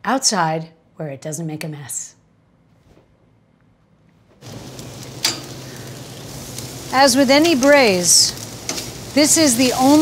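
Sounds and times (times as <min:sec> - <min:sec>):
chicken sizzling on grill: 0:04.4 - 0:10.0.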